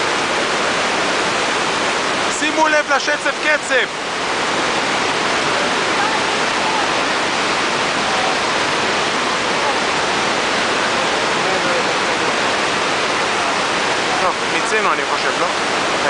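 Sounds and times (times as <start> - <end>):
waterfall crashing over rocks: 0.0 - 16.0.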